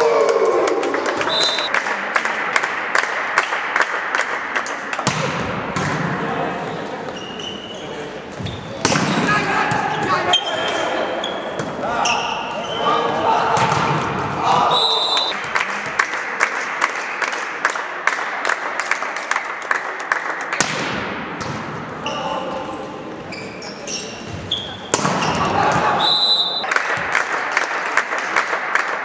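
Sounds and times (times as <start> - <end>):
referee's whistle: 1.3 - 1.7, 14.7 - 15.4, 26.0 - 26.7
volleyball being struck: 5.0 - 6.1, 20.6 - 21.7, 24.9 - 26.0
players shouting: 9.0 - 15.4, 24.9 - 26.6
sharp slaps: 20.5 - 21.5.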